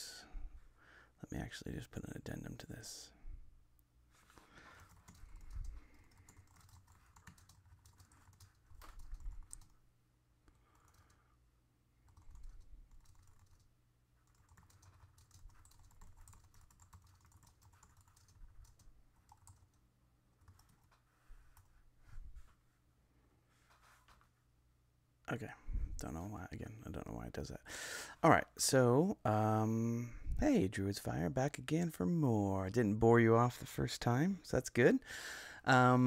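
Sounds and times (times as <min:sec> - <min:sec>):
faint keyboard typing: 0:04.5 - 0:09.8, 0:10.4 - 0:11.4, 0:12.0 - 0:21.8.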